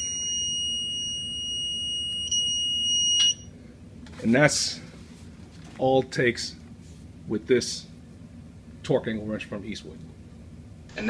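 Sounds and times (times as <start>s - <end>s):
electronic buzzer tone: 0.0s - 3.5s.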